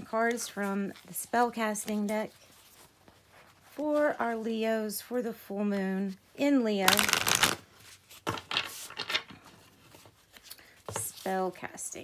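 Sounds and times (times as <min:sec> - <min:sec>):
cards being shuffled: 0:06.8 - 0:09.3.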